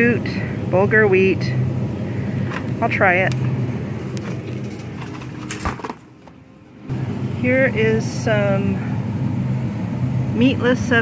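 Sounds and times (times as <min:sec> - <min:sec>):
steady low hum: 0:00.0 - 0:11.0
box dropping into wire cart: 0:04.3 - 0:06.4.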